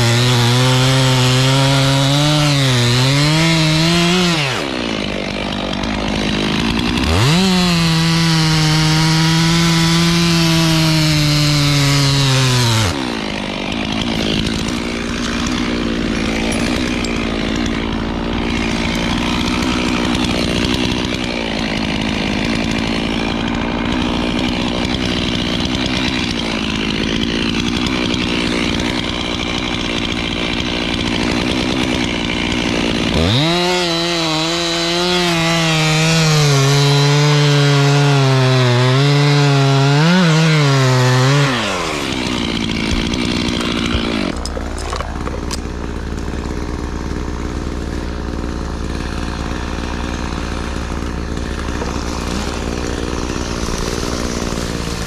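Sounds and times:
chainsaw cutting wood: 0.0s - 55.0s.

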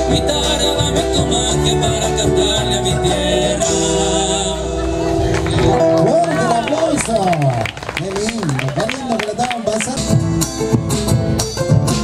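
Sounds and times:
drums and guitars beat: 0.0s - 6.6s, 8.4s - 12.0s.

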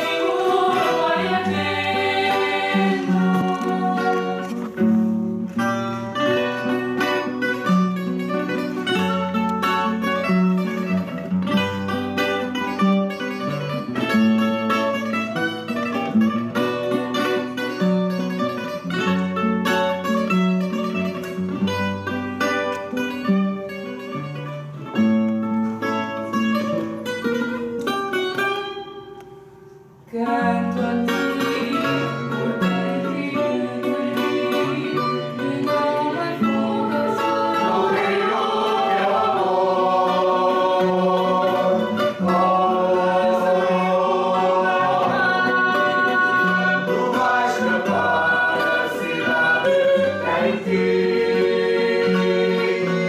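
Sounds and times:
classical guitar accompaniment: 0.0s - 53.0s
plucked guitar melody: 0.0s - 53.0s.

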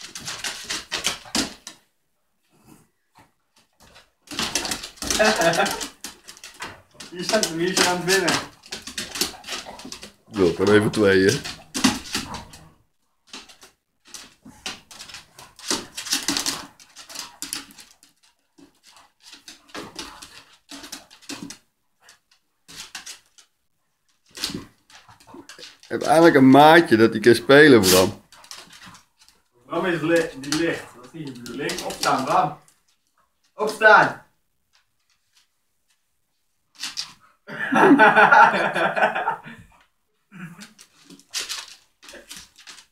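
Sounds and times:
dogs scuffling on wooden floor: 0.0s - 37.4s, 40.6s - 42.9s.

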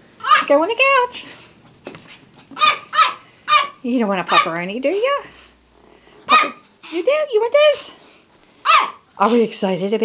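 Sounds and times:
small dog yipping: 0.2s - 0.5s, 2.6s - 4.5s, 6.3s - 6.6s, 8.6s - 9.0s.

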